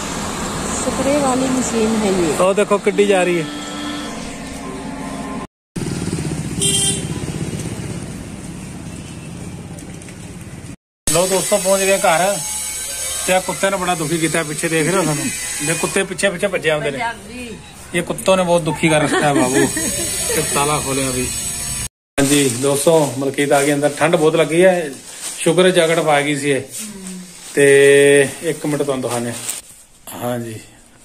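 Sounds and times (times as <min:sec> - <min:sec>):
street traffic: 0:00.0 - 0:21.9
people talking: 0:00.7 - 0:03.5, 0:13.3 - 0:21.3
short horn beep: 0:03.2 - 0:05.4, 0:06.6 - 0:07.3
motorcycle engine running: 0:05.8 - 0:10.7.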